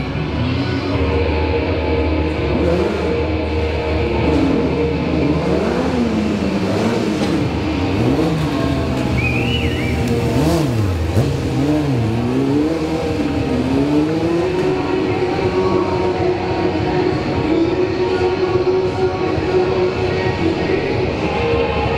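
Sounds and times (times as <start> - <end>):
motorcycle engine revving: 0.0 - 21.9.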